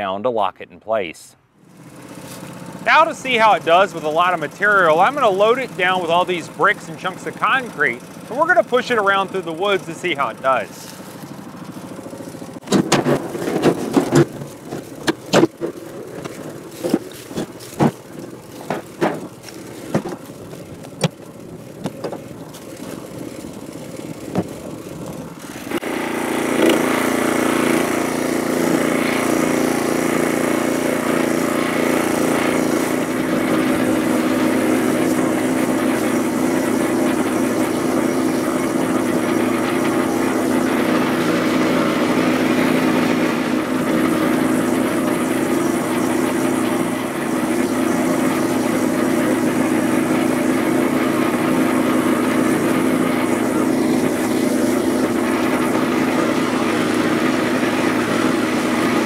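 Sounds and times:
gas engine running: 0:01.5 - 0:59.0.

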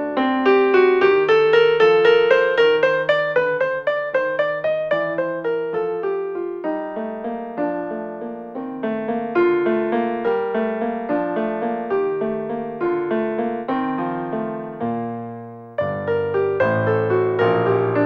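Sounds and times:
slow electric piano melody: 0:00.0 - 0:18.0.

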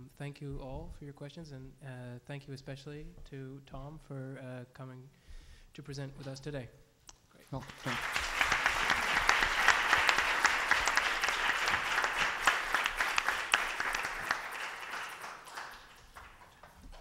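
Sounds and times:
audience applause: 0:07.6 - 0:16.8.

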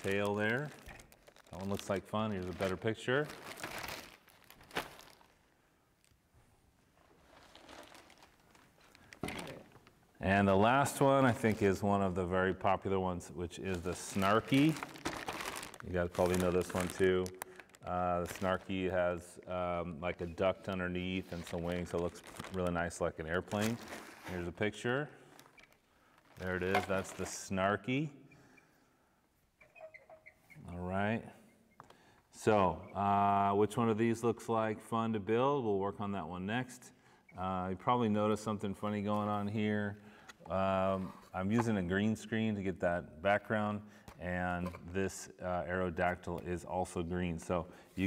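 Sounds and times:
plastic bag crinkling: 0:00.0 - 0:06.2, 0:07.0 - 0:09.9, 0:13.6 - 0:19.5, 0:20.1 - 0:27.5
man's voice: 0:10.2 - 0:14.9, 0:15.8 - 0:25.2, 0:26.4 - 0:28.2.

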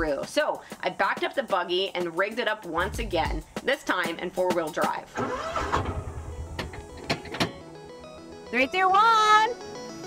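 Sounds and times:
vehicle engine starting and running: 0:05.1 - 0:07.6.

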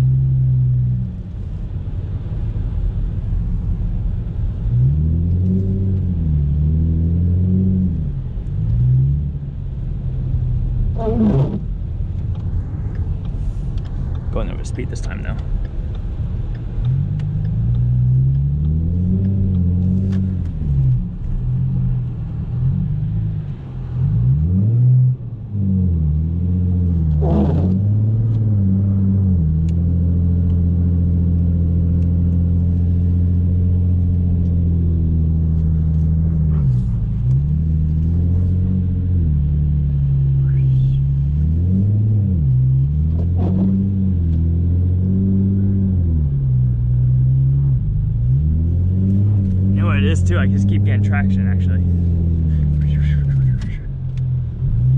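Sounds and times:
car engine revving: 0:00.0 - 0:54.9.

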